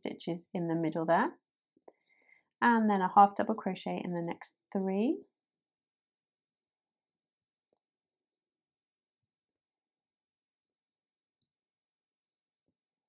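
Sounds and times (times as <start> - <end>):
woman's voice: 0.0 - 1.4, 2.6 - 5.2.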